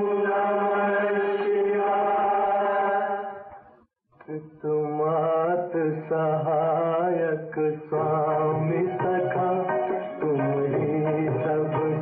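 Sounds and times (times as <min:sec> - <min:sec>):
person singing with vibrato: 0:04.2 - 0:12.0.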